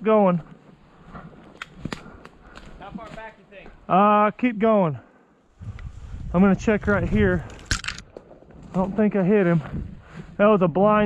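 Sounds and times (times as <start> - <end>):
twigs snapping: 1.5 - 3.2.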